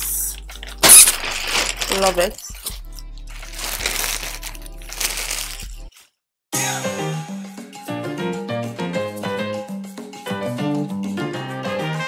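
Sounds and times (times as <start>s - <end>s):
background music: 0.0s - 5.9s, 6.6s - 12.0s
plastic packaging crinkling: 0.8s - 2.4s, 3.4s - 6.2s.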